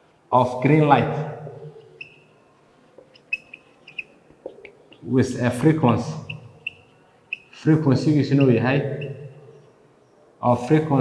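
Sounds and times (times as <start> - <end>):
marker squeaking on whiteboard: 1.6 - 5.1, 6.0 - 9.8.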